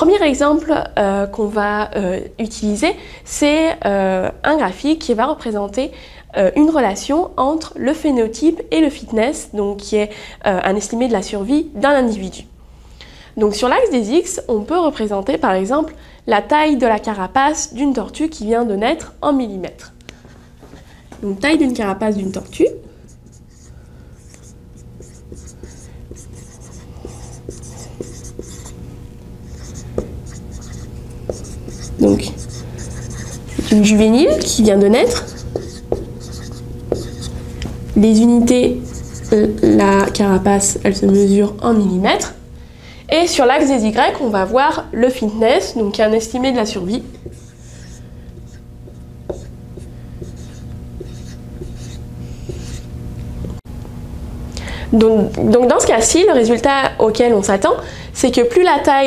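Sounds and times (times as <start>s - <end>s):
marker writing on whiteboard: 23.0s - 28.8s, 29.5s - 37.4s, 38.6s - 40.2s, 47.1s - 52.9s.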